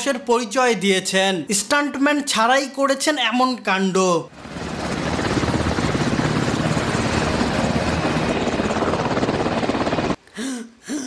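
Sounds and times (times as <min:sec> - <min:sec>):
helicopter hovering: 0:04.3 - 0:10.2.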